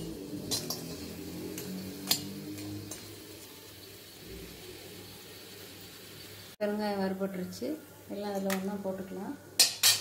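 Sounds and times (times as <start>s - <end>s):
spoon clinking on metal pot: 9.6s - 10.0s.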